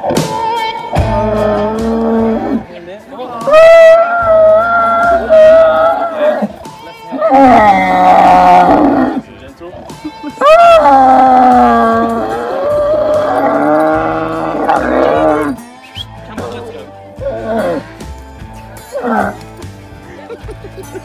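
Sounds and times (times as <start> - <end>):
camel groaning: 0.0 - 2.7, 3.5 - 9.2, 9.9 - 15.8, 16.4 - 18.0, 18.8 - 19.4.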